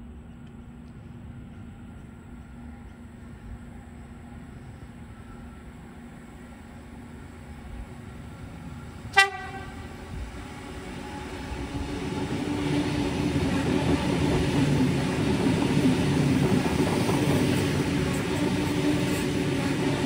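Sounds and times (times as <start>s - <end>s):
train rumble and wheel noise: 0.0s - 20.0s
train horn toot: 9.1s - 11.6s.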